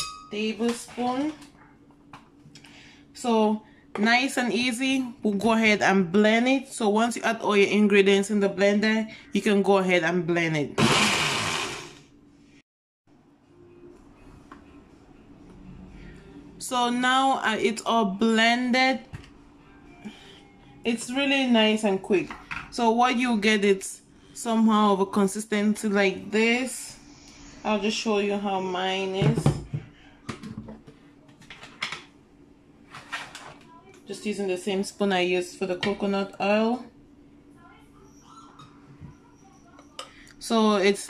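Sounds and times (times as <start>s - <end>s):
faint steady hum: 0.0s - 10.8s, 13.2s - 41.0s
blender whirring: 10.8s - 12.1s.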